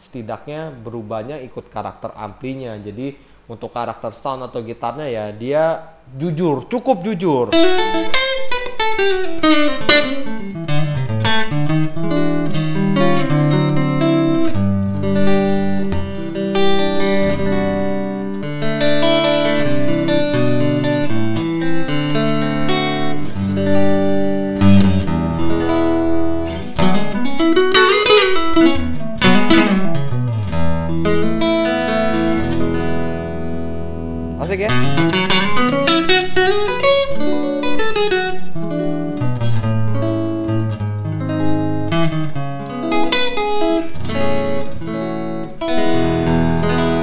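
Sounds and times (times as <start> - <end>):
clean electric guitar: 7.0 - 47.0.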